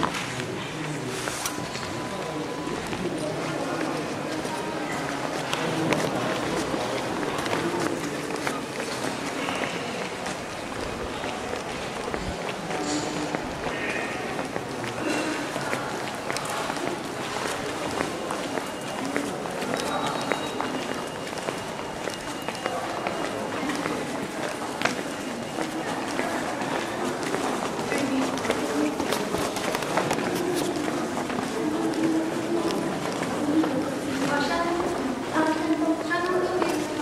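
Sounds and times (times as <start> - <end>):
indistinct talk of people: 0.0 - 37.0.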